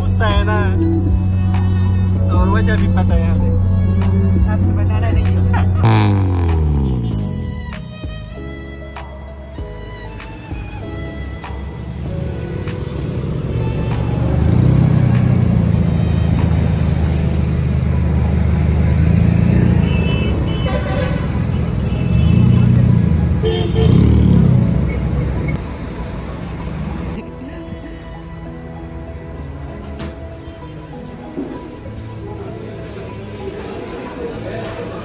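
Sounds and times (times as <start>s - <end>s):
background music: 0.0s - 35.0s
car engine running: 2.7s - 8.2s.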